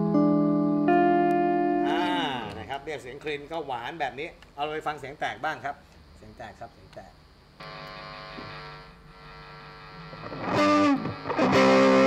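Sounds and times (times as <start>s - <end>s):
guitar amp mains hum and hiss: 0.0s - 12.0s.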